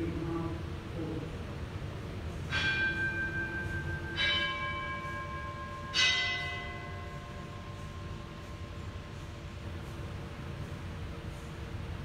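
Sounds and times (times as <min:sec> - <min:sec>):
bell ringing: 0:02.6 - 0:07.7.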